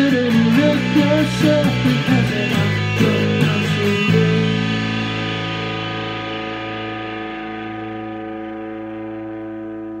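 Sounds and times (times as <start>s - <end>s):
distorted guitar and bass chord: 0.0s - 10.0s.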